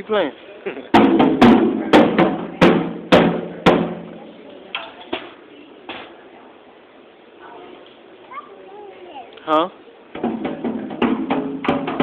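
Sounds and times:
drum kit strikes: 0.9s - 4.3s, 10.2s - 12.0s.

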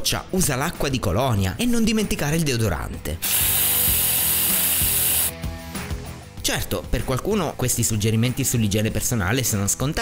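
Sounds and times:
soft background music: 0.0s - 10.0s
aerosol spray hissing: 3.2s - 5.4s.

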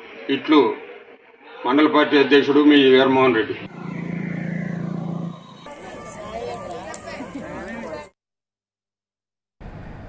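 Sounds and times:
vehicle engine running: 3.7s - 8.0s
faint voices: 3.7s - 8.2s.

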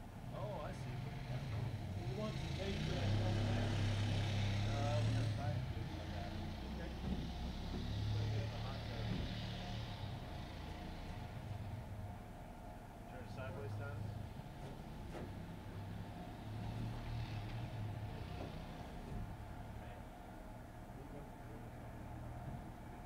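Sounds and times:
vehicle engine running: 0.0s - 23.0s
faint voices: 0.4s - 11.4s, 13.1s - 23.0s.

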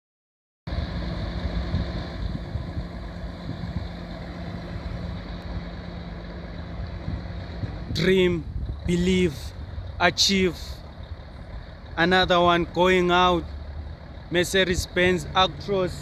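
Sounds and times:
truck diesel engine idling: 0.7s - 16.0s.

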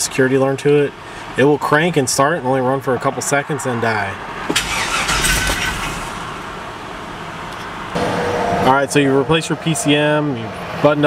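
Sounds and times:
truck engine cranking and running: 4.4s - 6.8s.

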